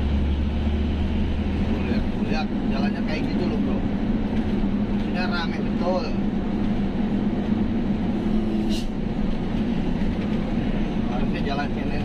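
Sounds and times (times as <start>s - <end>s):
truck diesel engine droning: 0.0s - 12.0s.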